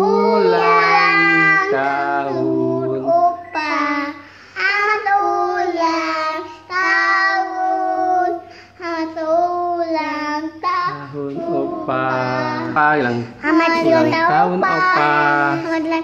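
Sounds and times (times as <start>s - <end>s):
girl singing: 0.0s - 16.0s
girl breathing: 4.2s - 4.7s, 8.4s - 8.8s.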